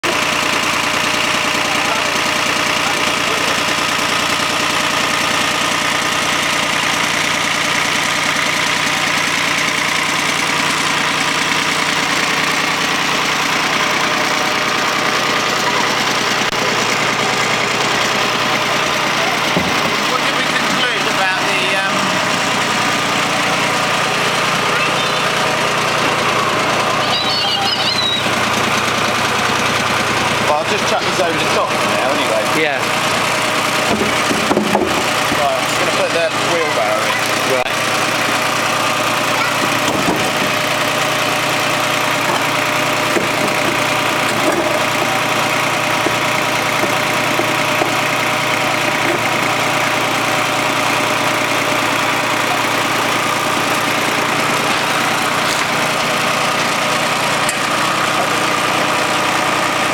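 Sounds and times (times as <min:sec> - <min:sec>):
drum shredding apples: 0:00.0 - 0:59.9
tractor diesel engine running: 0:00.0 - 0:59.9.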